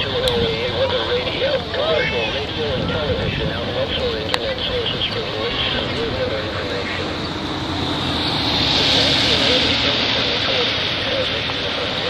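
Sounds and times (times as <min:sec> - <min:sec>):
heavy rain: 0:00.0 - 0:12.0
storm wind rushing: 0:01.6 - 0:12.0.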